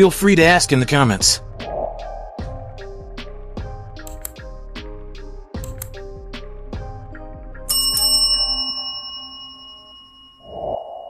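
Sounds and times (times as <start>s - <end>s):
notification chime ding: 7.7s - 10.6s.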